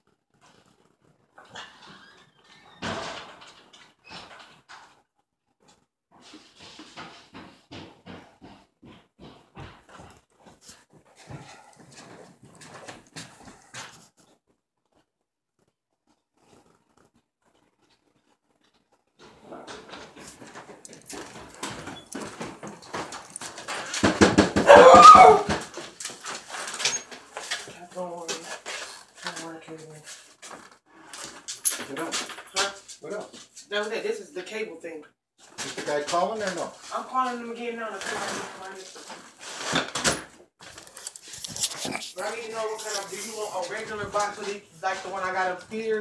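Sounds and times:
dog vocalising: 24.6 - 25.6, 40.8 - 43.6.

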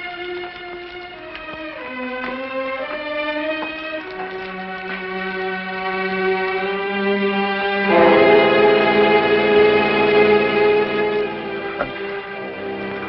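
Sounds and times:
sad violin and strings: 0.0 - 13.0.

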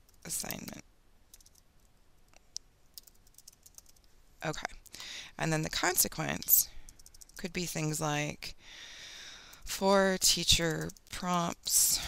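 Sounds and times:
faint keyboard keystrokes: 0.0 - 1.7, 2.3 - 4.1, 6.3 - 7.5.

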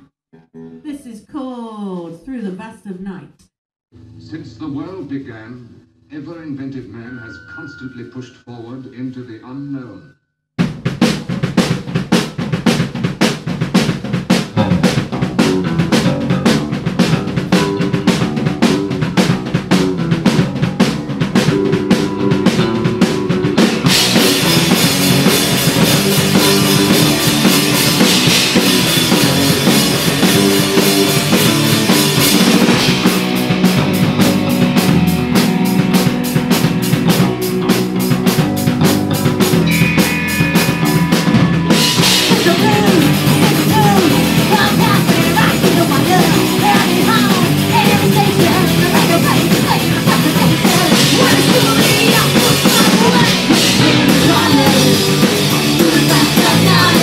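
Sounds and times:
drum kit beating: 10.6 - 57.0
punk rock band playing: 10.6 - 57.0.

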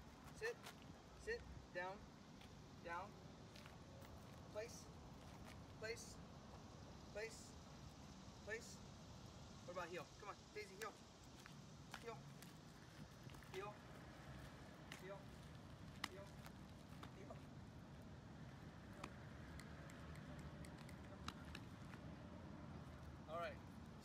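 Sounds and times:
outdoor background hum: 0.0 - 24.0.

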